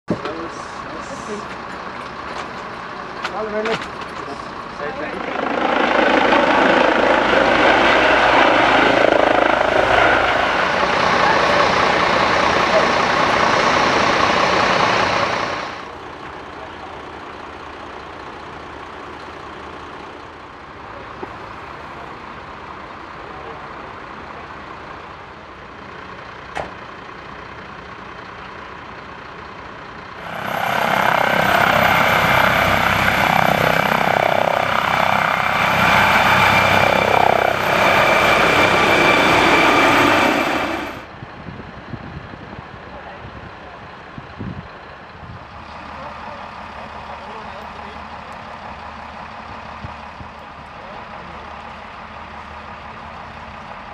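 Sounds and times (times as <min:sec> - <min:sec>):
helicopter rotor and turbine: 0:00.7 - 0:20.4, 0:28.7 - 0:53.9
high thin turbine whine: 0:04.5 - 0:16.0, 0:30.2 - 0:41.1.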